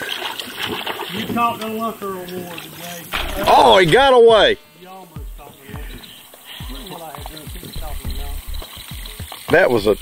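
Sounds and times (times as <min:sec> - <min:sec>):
indistinct voices speaking: 0:01.4 - 0:10.0
steady low rumble: 0:07.8 - 0:08.7.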